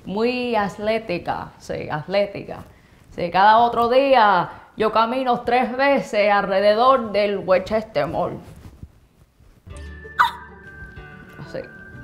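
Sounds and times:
background music: 0:09.7 - 0:12.0
woman squeaking with excitement: 0:10.2 - 0:10.5.

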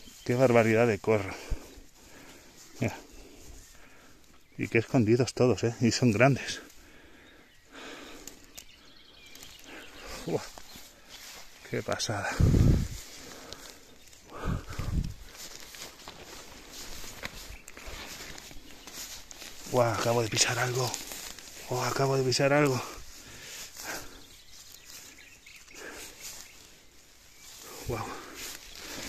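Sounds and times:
footsteps in long grass: 0:00.0 - 0:05.2, 0:05.8 - 0:29.0
grass and twigs rustling: 0:00.0 - 0:29.0.

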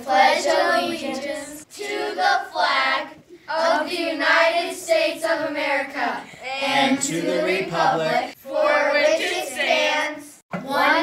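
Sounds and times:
children reciting together: 0:00.0 - 0:11.0.

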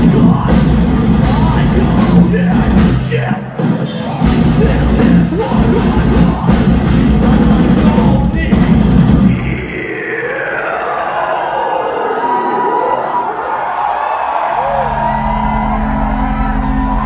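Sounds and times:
live heavy band music: 0:00.0 - 0:10.0
crowd cheering: 0:09.6 - 0:17.0.

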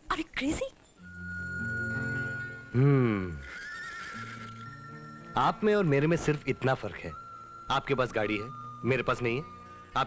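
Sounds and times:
quiet background music: 0:00.0 - 0:10.0
horse whinnying: 0:03.2 - 0:04.8.

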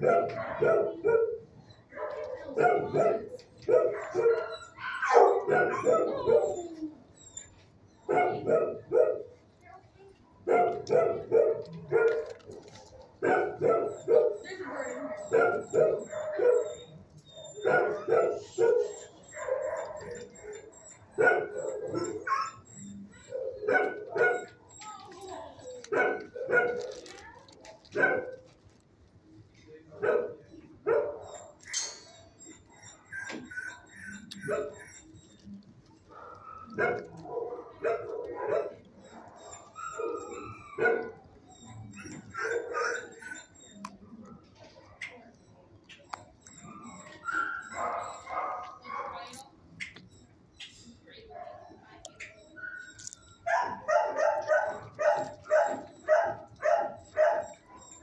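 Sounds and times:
dogs barking: 0:00.0 - 0:58.0.

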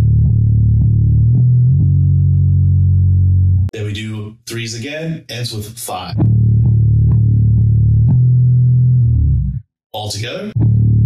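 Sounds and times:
electric bass picking notes: 0:00.0 - 0:03.7, 0:06.2 - 0:09.6, 0:10.6 - 0:11.0.

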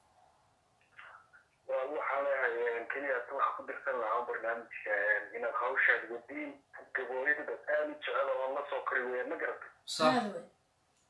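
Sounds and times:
person talking over phone line: 0:01.7 - 0:10.4.

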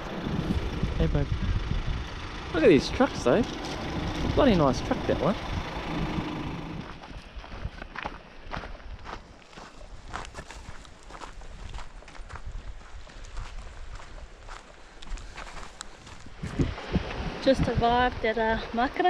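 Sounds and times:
footsteps on gravel path: 0:06.8 - 0:16.9.

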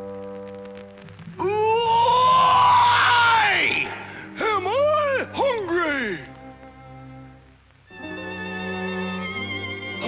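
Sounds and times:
soft orchestral music: 0:04.3 - 0:10.0.

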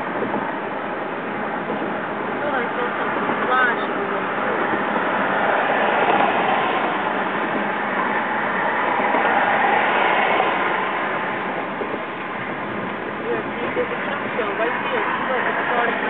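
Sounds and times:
car road and wind noise: 0:00.0 - 0:16.0.

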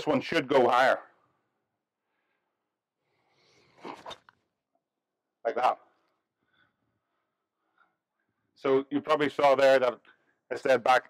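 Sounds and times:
golf club swish: 0:03.8 - 0:04.2.

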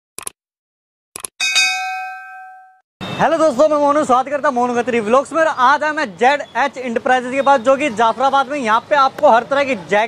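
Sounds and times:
bell ding: 0:01.4 - 0:02.8.

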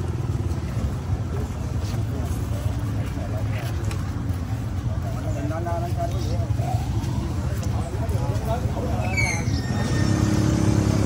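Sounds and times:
vehicle engine idling: 0:00.0 - 0:11.0
high squeal: 0:08.9 - 0:10.7.

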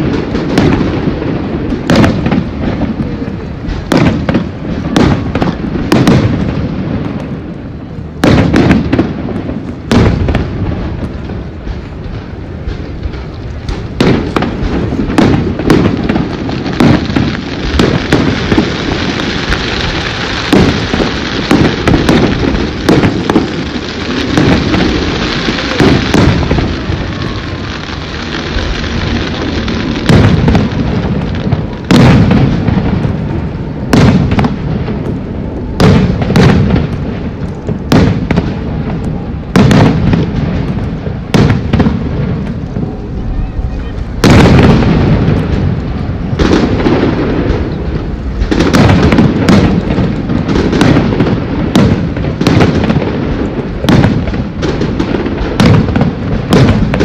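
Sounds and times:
firework crackling hiss: 0:00.0 - 0:57.0
firework shells bursting: 0:08.2 - 0:57.0.

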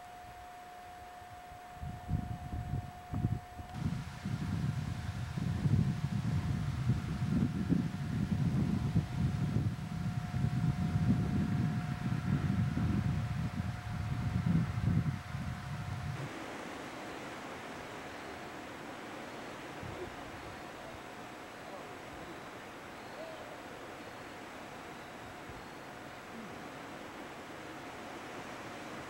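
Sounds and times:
even hiss: 0:00.0 - 0:29.0
faint steady tone: 0:00.0 - 0:29.0
wind buffeting microphone: 0:01.8 - 0:29.0.

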